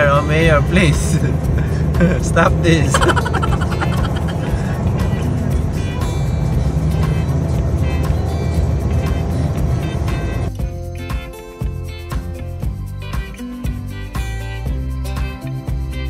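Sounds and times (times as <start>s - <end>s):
music playing: 2.7s - 16.0s
person laughing: 2.9s - 4.8s.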